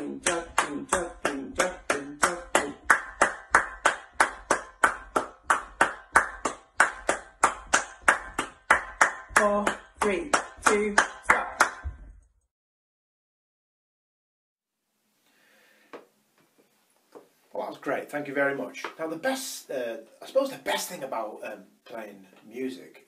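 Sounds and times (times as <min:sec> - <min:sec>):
steady hand claps: 0:00.0 - 0:12.0.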